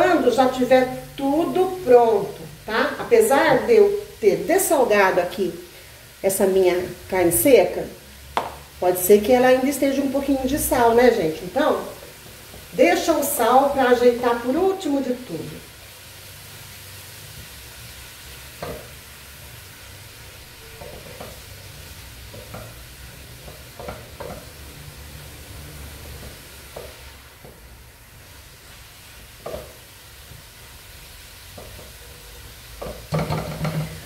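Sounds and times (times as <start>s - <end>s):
greens sizzling in a pot: 0.0s - 34.0s
spatula scraping a pot: 20.6s - 21.5s.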